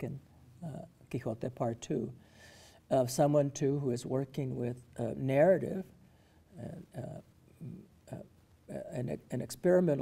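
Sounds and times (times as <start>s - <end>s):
man speaking: 0.0s - 2.2s, 2.8s - 10.0s.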